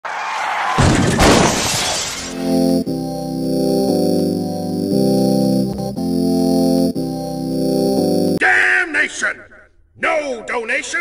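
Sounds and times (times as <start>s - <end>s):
loud shattering crash: 0.8s - 2.2s.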